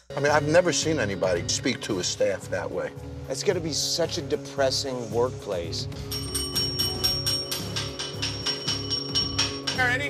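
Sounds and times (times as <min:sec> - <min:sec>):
background music: 0:00.0 - 0:10.0
service bell dinging: 0:06.1 - 0:10.0.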